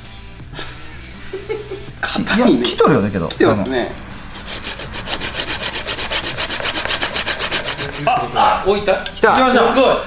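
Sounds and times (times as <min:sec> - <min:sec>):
hacksaw cutting steel tube: 0:04.3 - 0:08.3.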